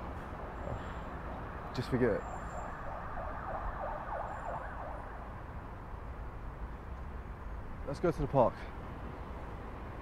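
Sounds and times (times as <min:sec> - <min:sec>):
low city rumble: 0:00.0 - 0:10.0
faint siren: 0:00.5 - 0:05.5.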